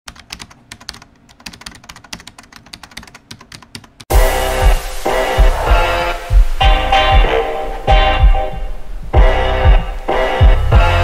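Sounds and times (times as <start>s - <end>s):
typing on computer keyboard: 0.1s - 4.1s.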